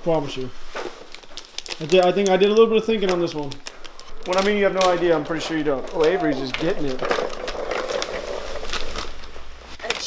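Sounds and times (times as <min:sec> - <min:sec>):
wrapping paper tearing and crinkling: 0:00.1 - 0:10.0.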